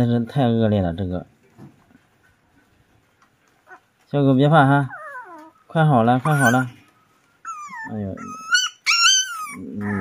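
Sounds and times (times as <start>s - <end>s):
faint puppy whimper: 4.6s - 10.0s.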